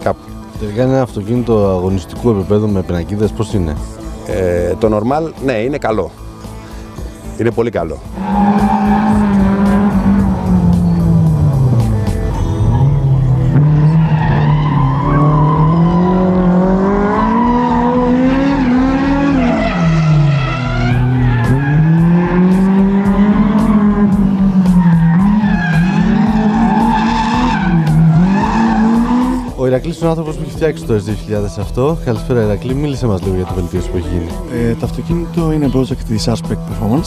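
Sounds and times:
tyres skidding: 0:07.9 - 0:30.5
car engine revving: 0:08.0 - 0:29.6.

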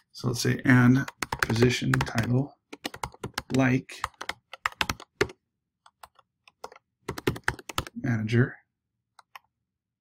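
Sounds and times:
typing on computer keyboard: 0:01.0 - 0:08.0.

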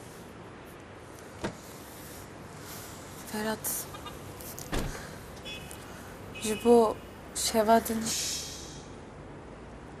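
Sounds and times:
thump: 0:04.7 - 0:05.0.

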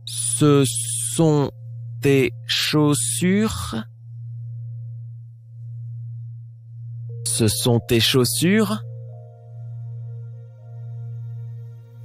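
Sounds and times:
faint higher tones: 0:00.0 - 0:12.0
low pulsing electronic drone: 0:00.0 - 0:12.0.

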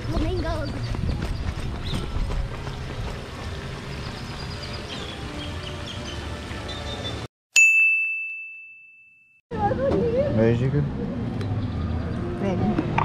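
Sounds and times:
wind rumble on microphone: 0:00.0 - 0:04.3
bell-like ding: 0:07.6 - 0:09.4.

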